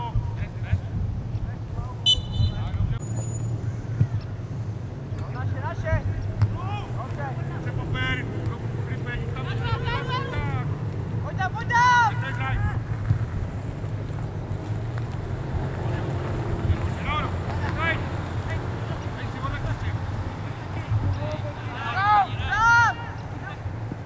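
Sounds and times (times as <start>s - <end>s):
voices shouting: 3.5s - 13.0s, 15.3s - 24.0s.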